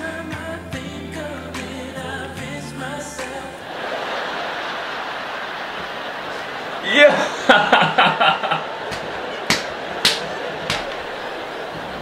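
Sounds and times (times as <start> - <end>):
audience laughing: 3.6 - 12.0.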